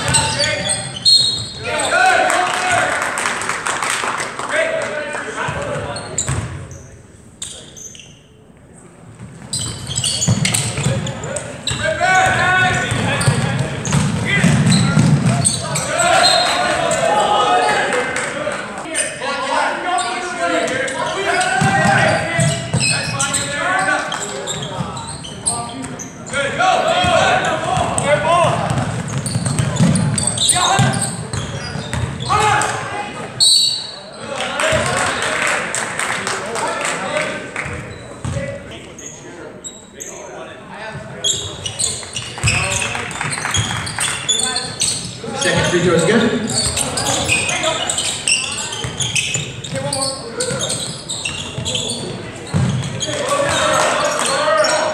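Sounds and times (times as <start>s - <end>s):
crowd chatter: 0.0s - 54.9s
basketball bouncing on wood floor: 12.2s - 15.4s, 27.7s - 30.2s, 52.5s - 53.6s.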